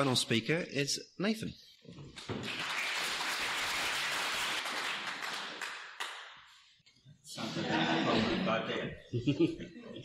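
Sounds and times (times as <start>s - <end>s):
people clapping: 2.1s - 6.8s.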